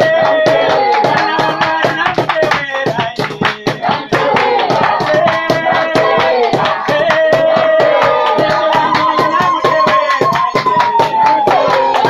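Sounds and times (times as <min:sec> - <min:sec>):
group singing a worship chorus: 0:00.0 - 0:12.0
hand clapping: 0:00.0 - 0:12.0.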